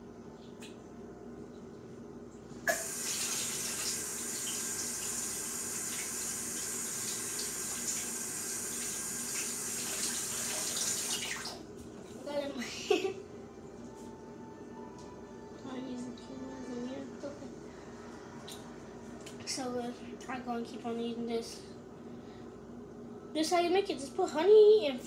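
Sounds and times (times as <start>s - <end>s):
tap water running into sink: 2.7s - 11.6s.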